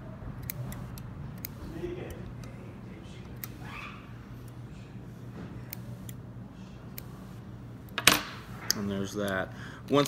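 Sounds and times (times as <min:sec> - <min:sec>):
steady low hum: 0:00.0 - 0:10.0
scissors snipping: 0:00.4 - 0:02.6.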